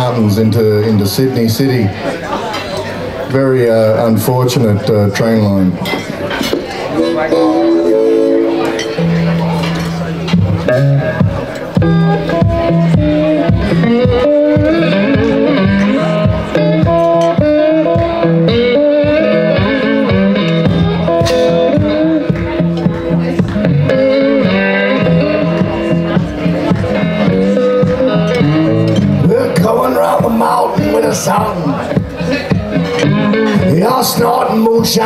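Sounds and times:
electric guitar blues groove: 4.7s - 35.0s.

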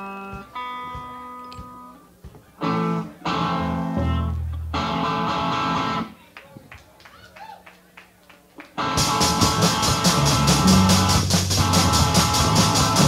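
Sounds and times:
electric guitar chords ringing: 2.6s - 6.1s, 8.8s - 13.0s
punk rock band playing: 2.6s - 6.1s, 8.8s - 13.0s.

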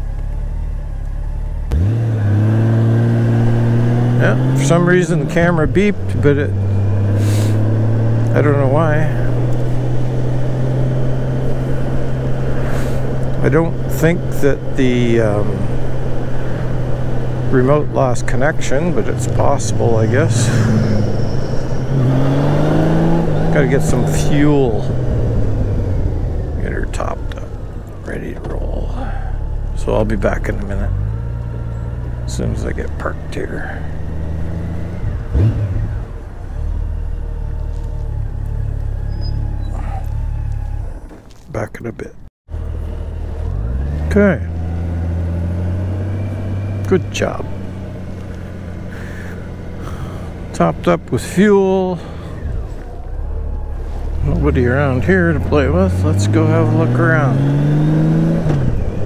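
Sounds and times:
motorcycle engine running low: 0.0s - 41.3s, 42.5s - 59.0s
road rumble: 0.0s - 59.0s.

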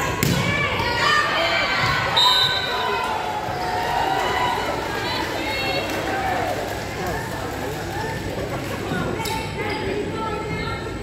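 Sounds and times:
volleyball hitting gym floor: 0.0s - 1.0s
voices echoing in gymnasium: 0.0s - 11.0s.

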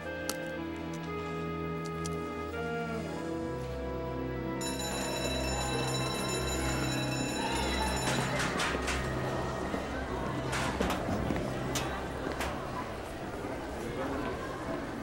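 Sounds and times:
hallway bustle: 0.4s - 15.0s
electric school bell ringing: 4.6s - 9.4s.

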